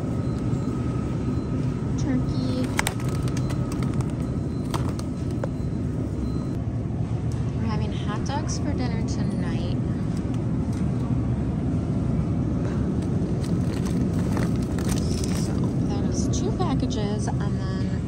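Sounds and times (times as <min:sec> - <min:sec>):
supermarket background rumble: 0:00.0 - 0:18.0
packaging clicks: 0:02.4 - 0:05.6, 0:13.4 - 0:15.7.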